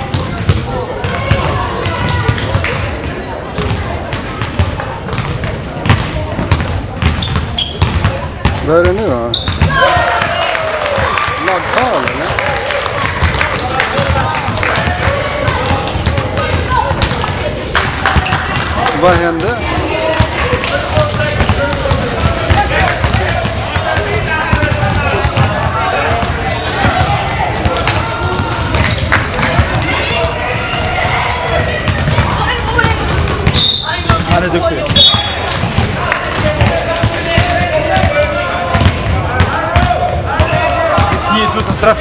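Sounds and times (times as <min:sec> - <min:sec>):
basketball bouncing on hall floor: 0:00.0 - 0:11.4, 0:13.0 - 0:42.0
players' voices: 0:00.0 - 0:42.0.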